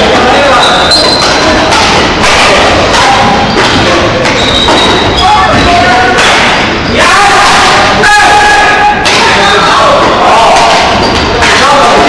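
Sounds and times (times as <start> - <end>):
rackets hitting shuttlecock: 0.0 - 6.8, 9.0 - 9.4, 10.6 - 12.0.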